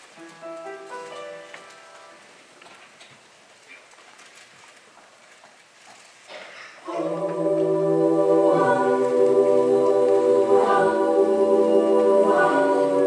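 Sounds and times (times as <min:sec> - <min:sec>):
choir singing a cappella: 0:06.8 - 0:13.0.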